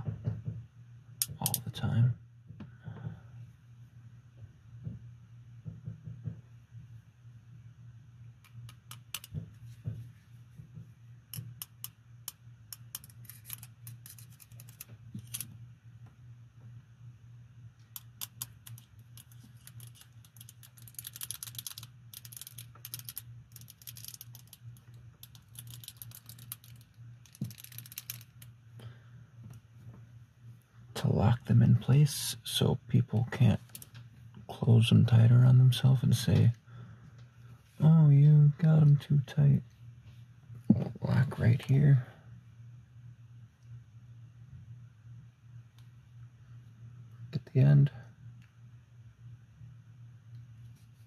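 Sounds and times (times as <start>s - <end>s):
low steady hum: 0.0s - 51.0s
rapid ratchet clicking: 11.3s - 15.5s, 17.8s - 28.5s
metallic handcuff clicks: 18.0s - 24.6s, 25.2s - 28.4s.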